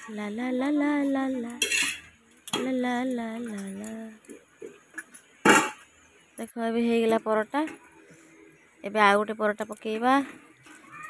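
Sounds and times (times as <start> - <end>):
metal utensil clattering on cookware: 1.5 - 2.7, 4.7 - 5.9.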